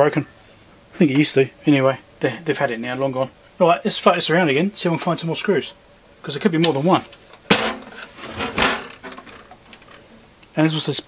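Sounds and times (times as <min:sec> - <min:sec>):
handling noise: 0:06.6 - 0:10.2
metal case scraping on workbench: 0:07.4 - 0:10.0.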